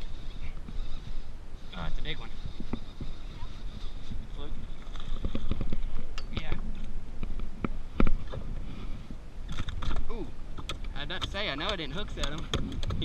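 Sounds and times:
fishing gear clicking and knocking: 0:04.8 - 0:08.5, 0:09.5 - 0:13.0.

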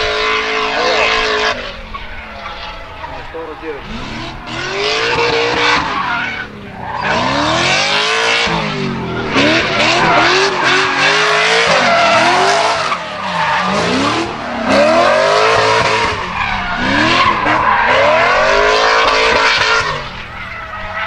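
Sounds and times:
car engine revving: 0:00.0 - 0:21.0
tyres skidding and squealing: 0:00.0 - 0:21.0.

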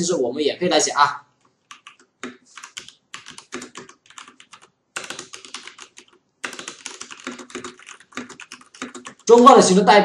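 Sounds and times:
computer keyboard typing: 0:01.6 - 0:09.5.

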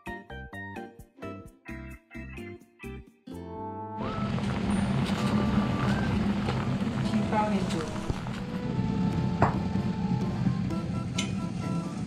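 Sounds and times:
pot of soup boiling: 0:04.0 - 0:10.7.

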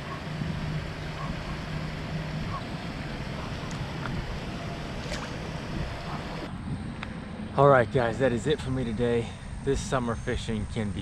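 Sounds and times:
wind on microphone: 0:00.0 - 0:07.6
low steady hum: 0:00.0 - 0:11.0.

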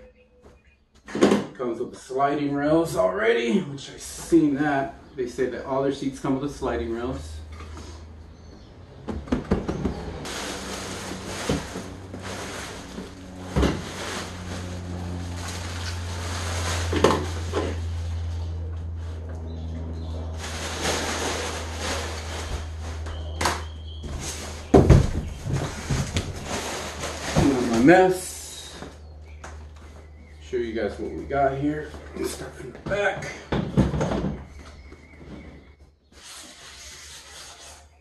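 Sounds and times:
steady low hum: 0:01.6 - 0:36.0.

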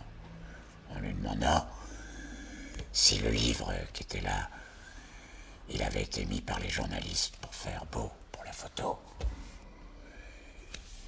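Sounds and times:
faint wavering whine: 0:00.0 - 0:11.0.

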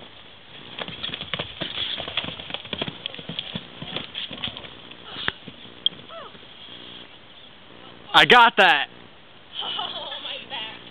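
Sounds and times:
horse hooves pounding on sand: 0:00.0 - 0:07.1.

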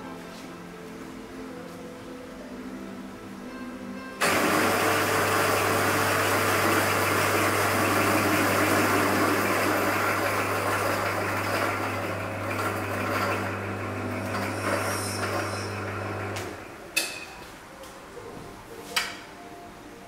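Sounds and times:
coffee grinder motor humming: 0:04.2 - 0:16.7.

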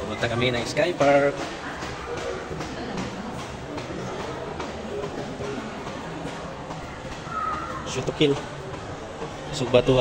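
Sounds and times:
distant voices: 0:00.0 - 0:10.0
faint background music: 0:00.0 - 0:10.0.

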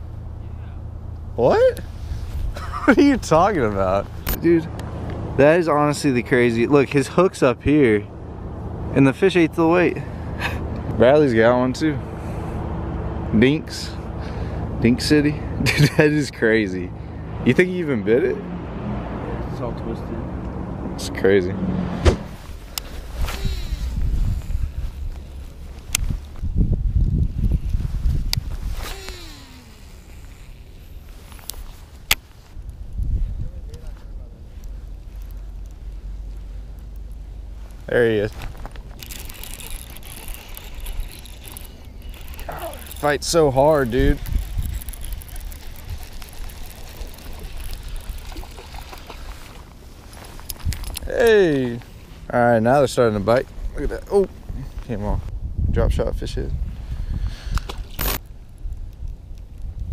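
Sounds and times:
wind on microphone: 0:21.9 - 0:31.0, 0:32.6 - 0:33.9, 0:43.6 - 0:49.3, 0:53.6 - 0:59.9
fishing reel spool whine: 0:28.9 - 0:31.0, 0:39.0 - 0:49.6.

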